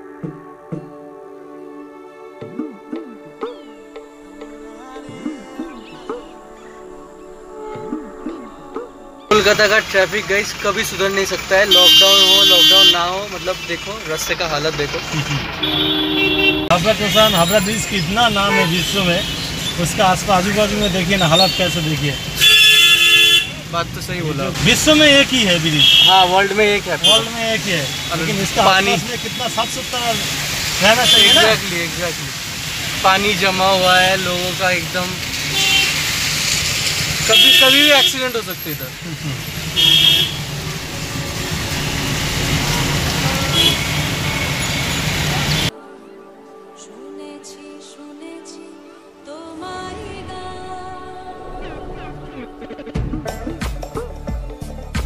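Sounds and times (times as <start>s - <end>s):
car engine and road noise: 9.3s - 45.7s
vehicle horn honk: 11.6s - 13.8s, 15.6s - 19.6s, 21.4s - 23.6s, 25.8s - 31.6s, 35.5s - 36.0s, 37.2s - 38.4s, 39.8s - 40.6s, 42.6s - 45.7s
vehicle horn two-note chord: 15.6s - 17.4s, 22.4s - 23.5s.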